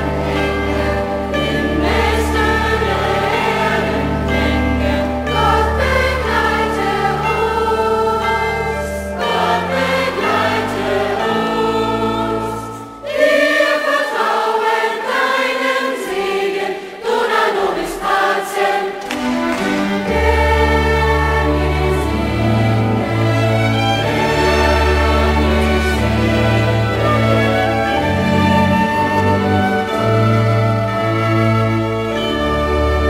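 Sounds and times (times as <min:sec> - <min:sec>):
children's choir singing: 0:00.0 - 0:33.0
instrumental accompaniment: 0:00.0 - 0:33.0.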